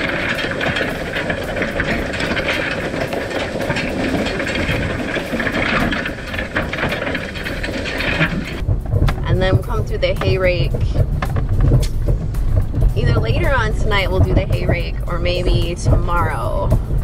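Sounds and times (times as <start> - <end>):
hay rake tines rattling: 0.0 - 17.0.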